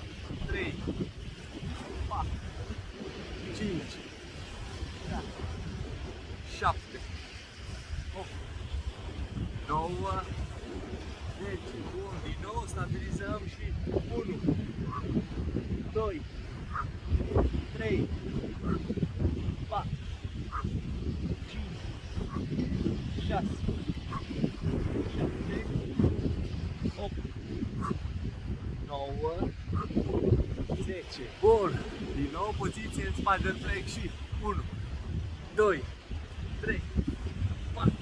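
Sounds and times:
sea surf: 0:00.0 - 0:38.0
wind buffeting microphone: 0:00.0 - 0:38.0
man speaking: 0:01.9 - 0:02.7, 0:03.4 - 0:04.1, 0:05.0 - 0:05.5, 0:06.4 - 0:07.1, 0:09.6 - 0:10.4, 0:11.4 - 0:14.5, 0:15.9 - 0:16.3, 0:17.6 - 0:18.1, 0:22.7 - 0:23.6, 0:24.9 - 0:25.8, 0:26.9 - 0:27.2, 0:30.7 - 0:34.7, 0:35.5 - 0:35.9, 0:36.6 - 0:36.9.

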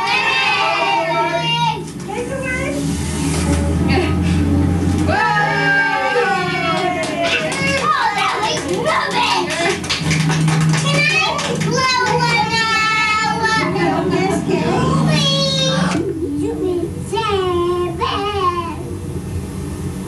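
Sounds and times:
children chattering and squealing: 0:00.0 - 0:04.5, 0:10.8 - 0:18.9
steady low hum: 0:00.0 - 0:20.0.

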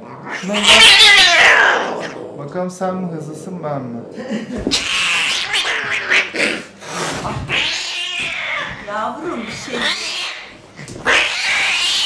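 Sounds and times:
cat yowling: 0:00.0 - 0:02.2, 0:04.6 - 0:06.6, 0:07.5 - 0:12.0.

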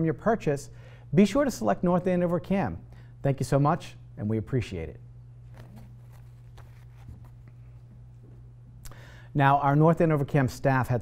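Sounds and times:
low electrical hum: 0:00.0 - 0:11.0
paper rustling: 0:05.5 - 0:08.0.

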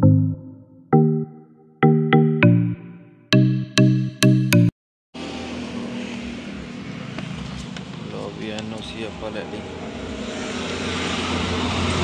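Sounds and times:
outdoor traffic noise: 0:05.2 - 0:12.0.

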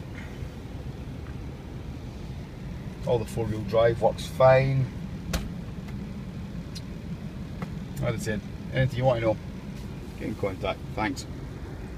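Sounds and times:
vehicle engine idling: 0:00.0 - 0:11.9.

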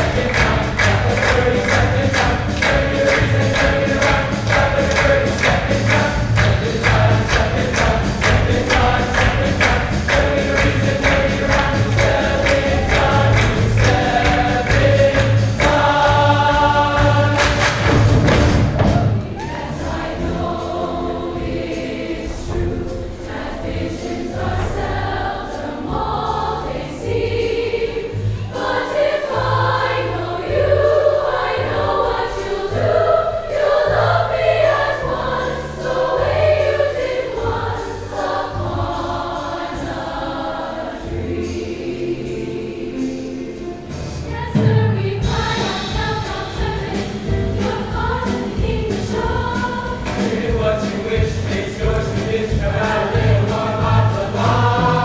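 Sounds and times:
choir singing a show tune: 0:00.0 - 0:55.0.

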